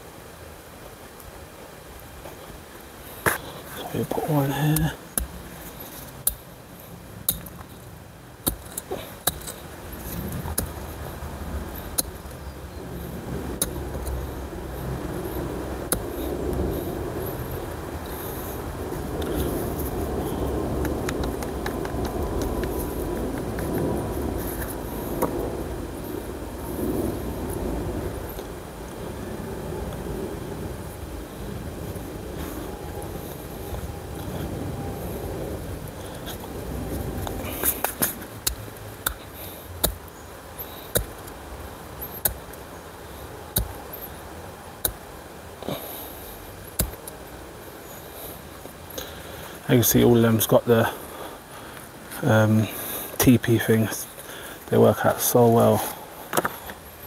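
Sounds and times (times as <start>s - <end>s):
hands working soil: 3.2s - 25.5s, 36.0s - 47.3s.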